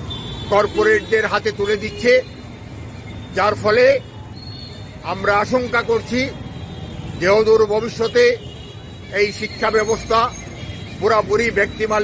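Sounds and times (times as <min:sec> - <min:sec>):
steady background noise: 0:00.0 - 0:12.0
man speaking: 0:00.5 - 0:02.4, 0:03.3 - 0:04.1, 0:05.0 - 0:06.4, 0:07.2 - 0:08.5, 0:11.0 - 0:12.0.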